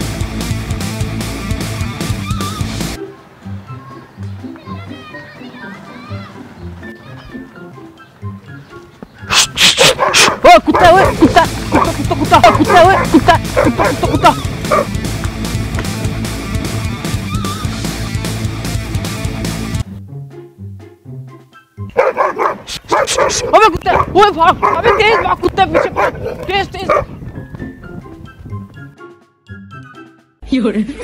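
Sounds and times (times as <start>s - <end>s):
background music: 0.0s - 31.0s
fake dog yapping barks: 9.3s - 14.9s, 21.9s - 27.1s.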